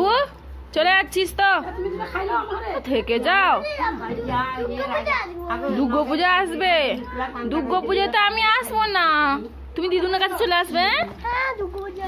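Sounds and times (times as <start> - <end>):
young boy talking: 3.6 - 5.8, 11.0 - 12.0.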